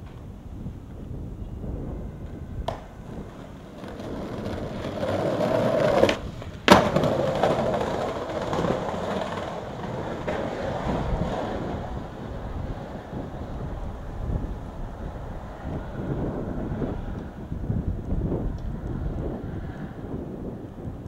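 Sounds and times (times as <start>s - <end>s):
skateboard wheels rolling on concrete: 0.0s - 21.0s
skateboard clack: 2.2s - 13.9s.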